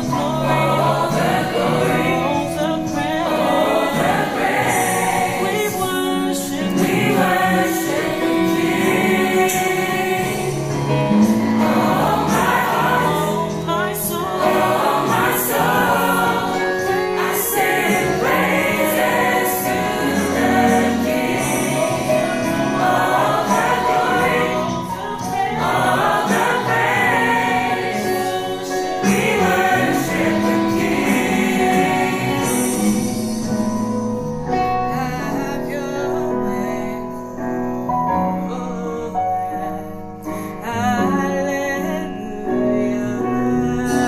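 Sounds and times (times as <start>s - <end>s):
gospel choir singing: 0.0s - 44.0s.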